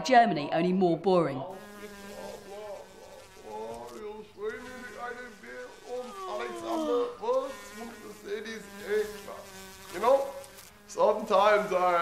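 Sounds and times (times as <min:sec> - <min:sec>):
fly-like buzz: 0:01.5 - 0:12.0
long yawn: 0:06.0 - 0:07.1.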